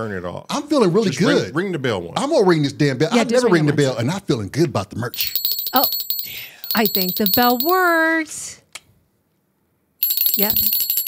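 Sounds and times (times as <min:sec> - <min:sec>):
ringing bell trill: 0:05.2 - 0:08.0, 0:10.0 - 0:11.0.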